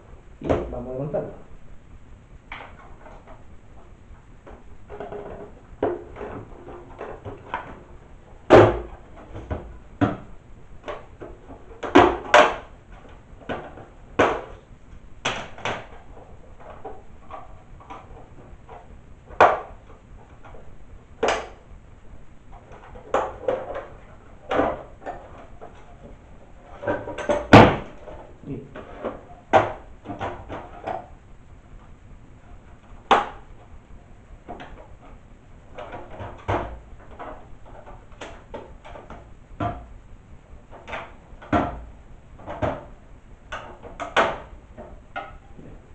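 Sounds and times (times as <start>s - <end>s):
plastic cracks and knocks: 2.5s - 21.8s, 22.4s - 40.0s, 40.6s - 45.8s.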